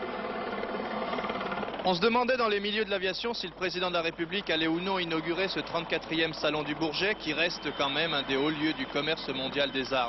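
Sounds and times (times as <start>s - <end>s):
helicopter hovering: 0.0s - 10.0s.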